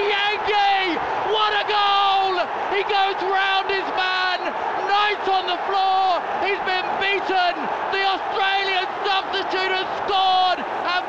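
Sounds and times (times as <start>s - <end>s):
commentator shouting excitedly: 0.0s - 11.0s.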